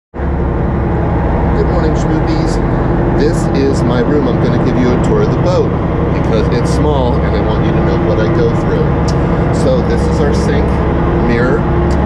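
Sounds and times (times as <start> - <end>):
boat engine drone: 0.2 - 12.0.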